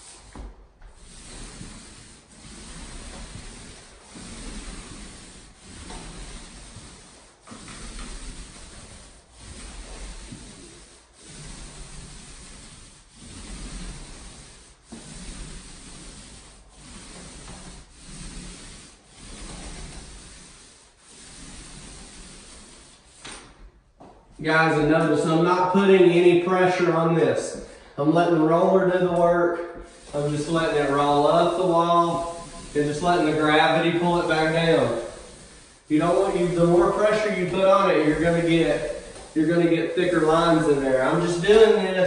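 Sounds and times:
paint roller swishing on drywall: 0.0s - 42.0s.

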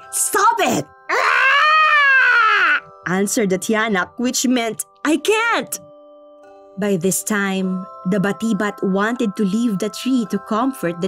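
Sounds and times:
person imitating baby wailing: 1.1s - 2.8s.

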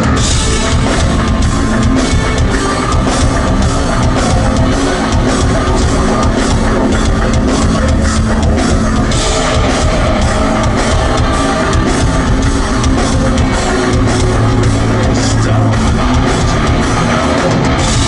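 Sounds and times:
drum kit beating: 0.0s - 18.0s
heavy rock band playing: 0.0s - 18.0s.

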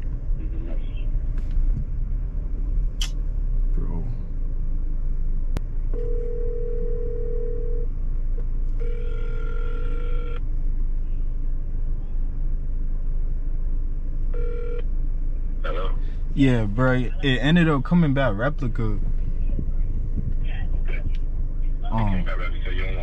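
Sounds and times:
car cabin rumble: 0.0s - 23.0s
phone ringback tone: 6.0s - 7.8s, 8.8s - 10.4s.

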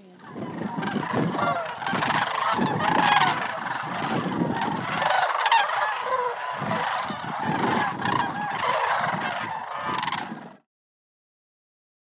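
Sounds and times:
cranes calling in flight: 0.0s - 10.6s.

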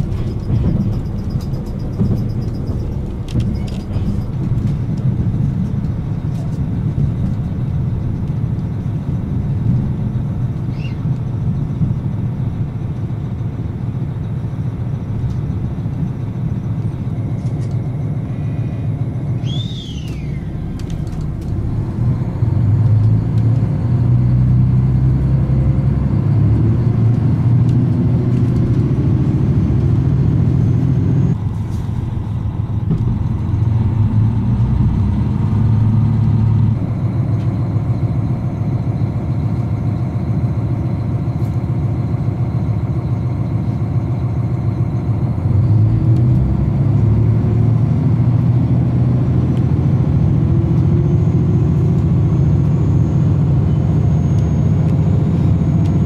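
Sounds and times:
diesel railcar engine hum: 0.0s - 56.0s
train rumbling on rails: 0.0s - 56.0s.

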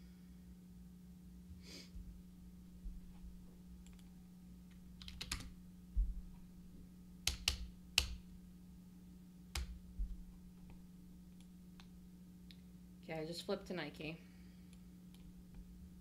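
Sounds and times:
low electrical hum: 0.0s - 16.0s
keyboard keys clicking: 5.0s - 5.6s, 7.2s - 8.2s, 9.5s - 9.8s
dull low bump: 5.9s - 6.4s.

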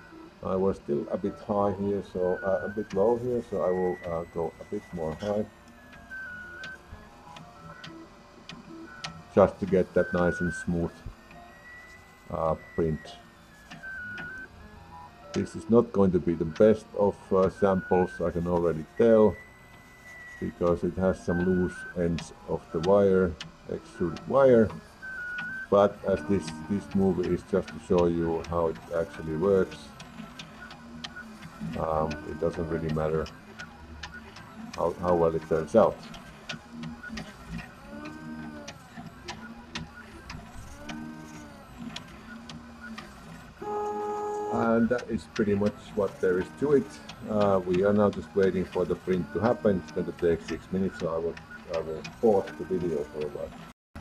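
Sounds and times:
stepper motors whining: 0.0s - 54.0s
faint clicks: 17.4s - 53.7s.

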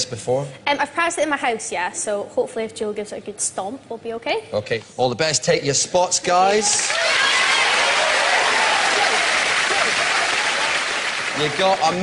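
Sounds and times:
audience clapping: 6.6s - 12.0s
people cheering: 6.6s - 12.0s.

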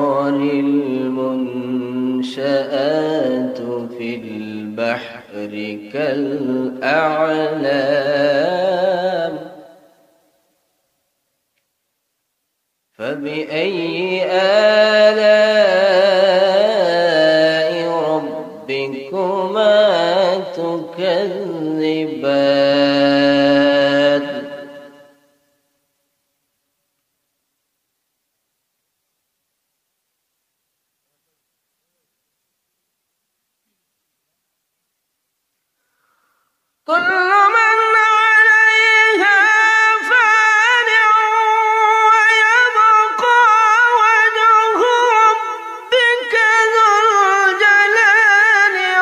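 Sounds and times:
man chanting into a microphone: 0.0s - 9.9s, 13.0s - 25.2s, 36.8s - 49.0s.

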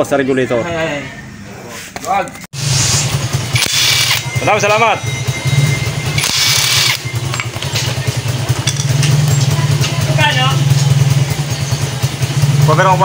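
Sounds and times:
motorcycle engine idling: 2.6s - 13.0s
cordless drill whirring: 3.6s - 4.3s, 6.2s - 7.0s.

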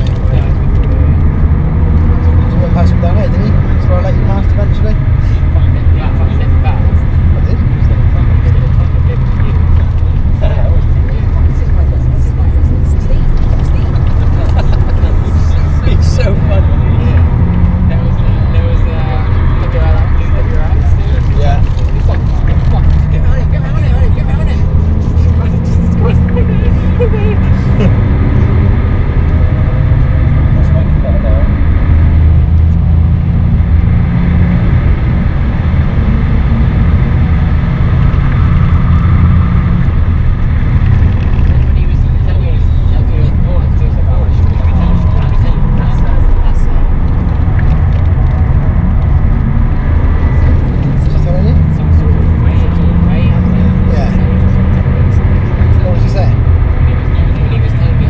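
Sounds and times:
diesel engine pulling hard: 0.0s - 58.0s
road and tyre noise: 0.0s - 58.0s.

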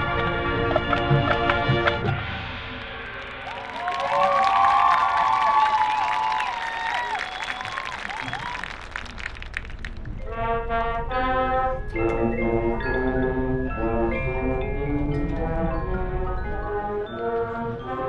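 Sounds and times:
marching band brass playing: 10.2s - 18.0s.

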